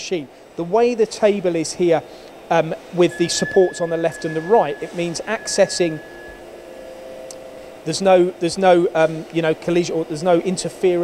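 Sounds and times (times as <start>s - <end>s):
thin steady tones: 3.0s - 8.1s.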